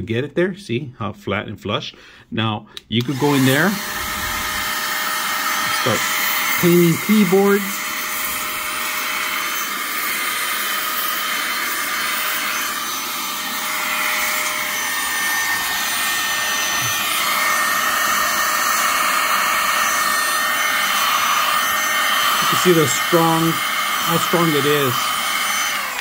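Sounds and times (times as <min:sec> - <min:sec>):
electric air duster blowing: 0:03.0 - 0:26.0.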